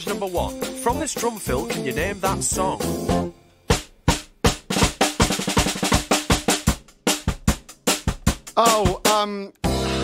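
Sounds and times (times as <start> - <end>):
drum kit fill: 0.0 - 10.0.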